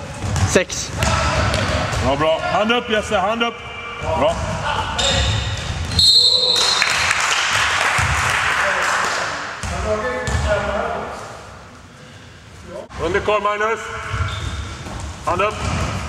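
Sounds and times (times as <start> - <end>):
ball bouncing on court floor: 0.1 - 2.1, 7.9 - 8.3, 9.5 - 10.5, 14.1 - 16.0
players' voices: 0.4 - 5.9
referee's whistle: 5.9 - 7.0.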